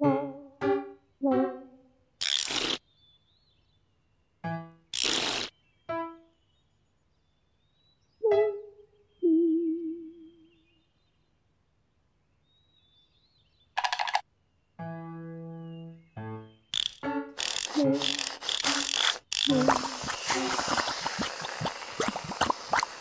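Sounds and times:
faint birdsong: 0:02.7 - 0:23.0
hissing whooshes: 0:17.4 - 0:23.0.

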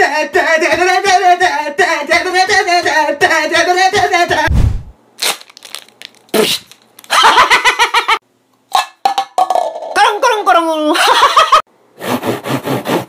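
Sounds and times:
man chanting rhythmically: 0:00.0 - 0:04.5.

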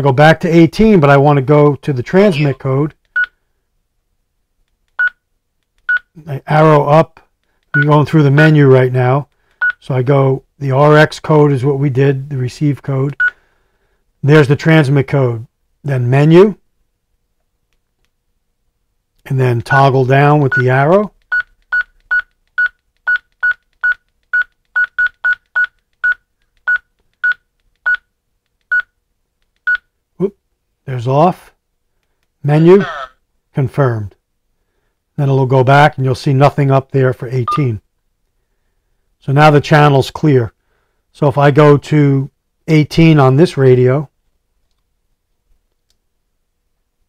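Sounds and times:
radio key beeps: 0:37.5 - 0:37.8.

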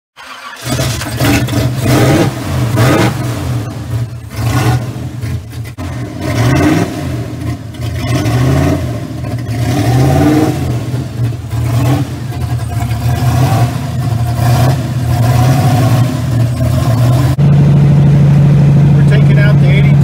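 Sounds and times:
car engine revving: 0:00.2 - 0:20.0.

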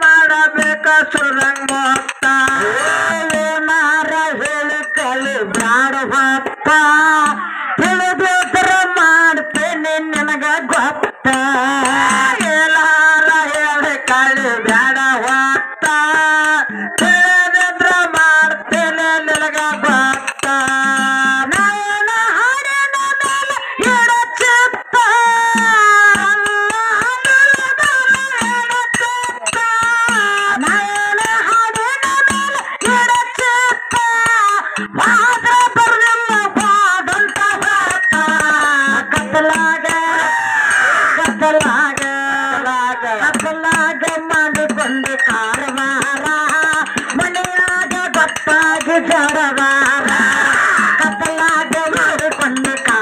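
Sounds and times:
woman singing folk song: 0:00.0 - 0:40.4, 0:41.2 - 0:50.3
hand drum beating: 0:00.0 - 0:40.5, 0:41.1 - 0:53.0.

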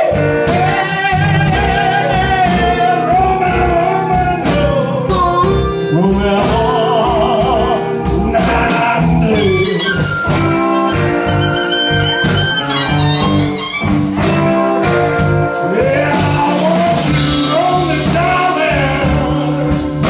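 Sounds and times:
blues band playing: 0:00.0 - 0:20.0
steady drum beat: 0:00.0 - 0:20.0
wavering lead guitar notes: 0:00.0 - 0:20.0.

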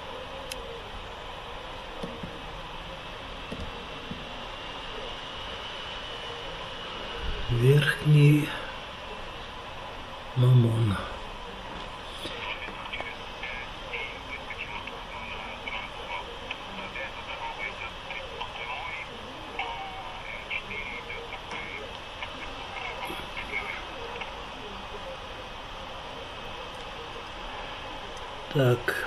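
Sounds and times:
faint indistinct voice: 0:00.0 - 0:29.0.

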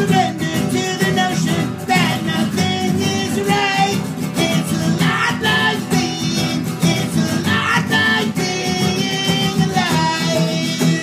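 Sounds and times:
acoustic guitars strumming: 0:00.0 - 0:11.0
person singing: 0:00.0 - 0:11.0.

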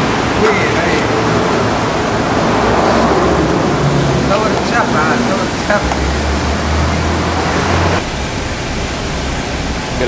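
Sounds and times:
loud steady rushing noise: 0:00.0 - 0:10.0
people talking: 0:00.4 - 0:01.3, 0:04.2 - 0:06.2.

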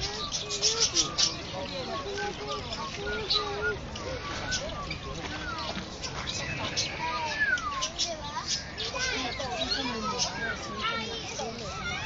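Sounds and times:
peacock calling: 0:00.0 - 0:12.0
people's voices: 0:00.0 - 0:12.0.

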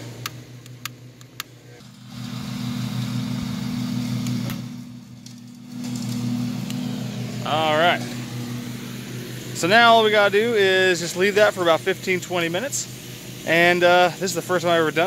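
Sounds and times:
low engine-like drone: 0:00.0 - 0:15.0.

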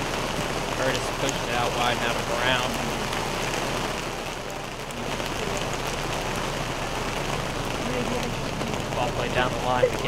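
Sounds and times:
steady rain hiss: 0:00.0 - 0:10.0.

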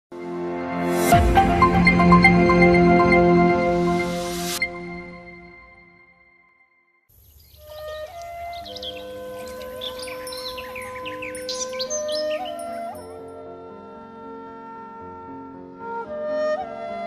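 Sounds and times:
calm ambient music: 0:00.2 - 0:06.4, 0:07.3 - 0:17.0
birds chirping: 0:07.1 - 0:13.2.

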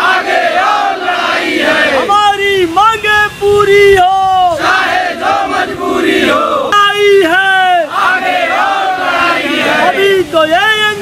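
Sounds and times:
crowd shouting slogans: 0:00.0 - 0:02.4, 0:04.2 - 0:11.0.

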